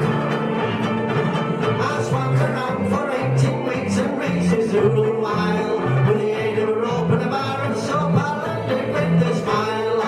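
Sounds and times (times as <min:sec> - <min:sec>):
banjolele strummed: 0:00.0 - 0:10.0.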